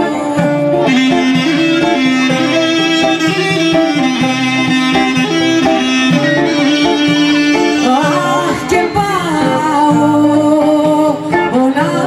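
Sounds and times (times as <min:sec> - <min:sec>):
person singing: 0:00.0 - 0:12.0
plucked-string backing: 0:00.0 - 0:12.0.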